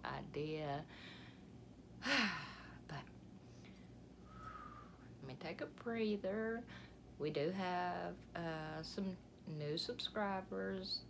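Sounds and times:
woman sighing: 2.0s - 2.8s.

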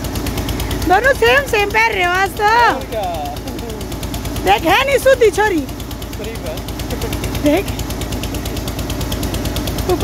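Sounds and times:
engine running with rapid knocking: 0.0s - 10.0s.

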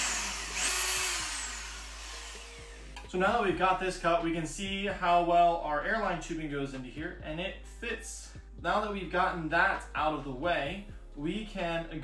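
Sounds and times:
electric drill whining: 0.0s - 3.1s.

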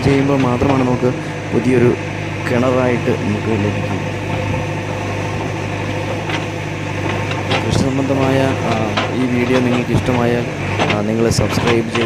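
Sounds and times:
person speaking: 0.0s - 4.2s, 7.5s - 12.0s
diesel engine droning: 0.0s - 12.0s
backhoe arm digging soil: 3.8s - 12.0s.

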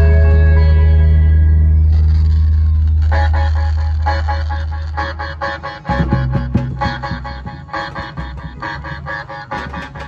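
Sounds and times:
band music with deep bass: 0.0s - 10.0s.

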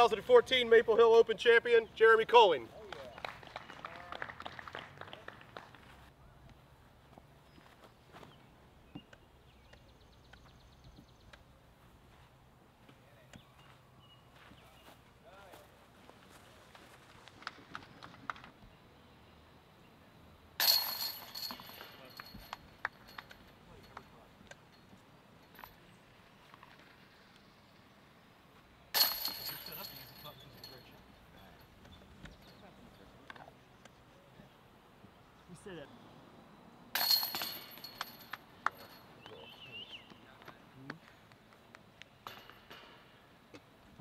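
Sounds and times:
disc hitting basket chains: 20.6s - 26.9s, 28.9s - 32.7s, 36.9s - 39.2s, 42.2s - 43.3s.

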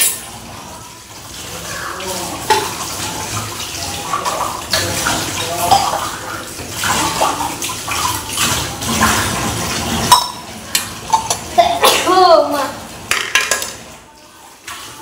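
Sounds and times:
metal pots clanking together: 0.0s - 0.5s, 2.4s - 3.4s, 4.0s - 12.2s, 13.0s - 13.9s
running water: 0.0s - 15.0s.

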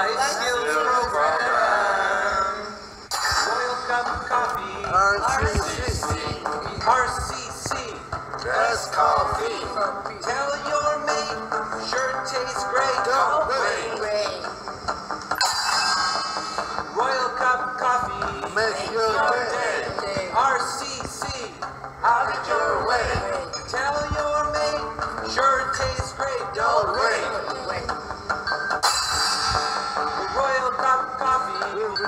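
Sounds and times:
upbeat jingle by live band: 2.8s - 23.0s, 28.4s - 32.0s.

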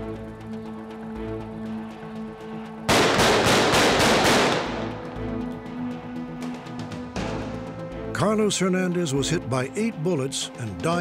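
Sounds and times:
rapid handgun shots: 2.9s - 5.0s.

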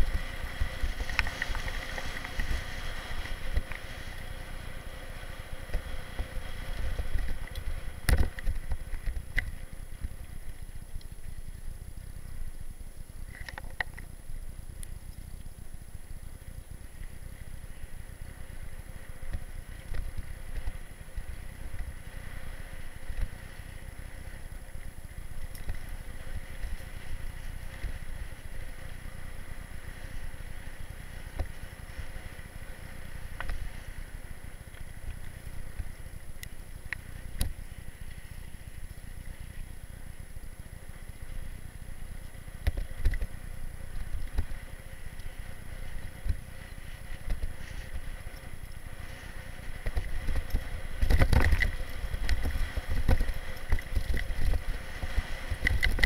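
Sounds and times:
bike riding rumble: 0.0s - 56.0s.

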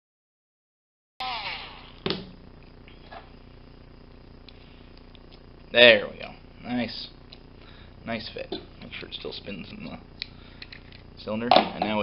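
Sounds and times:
rotary tool spinning down: 1.2s - 2.2s.

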